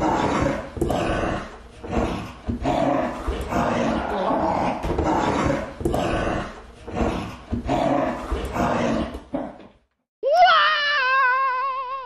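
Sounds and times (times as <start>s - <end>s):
rough growling and snarling: 0.0s - 9.6s.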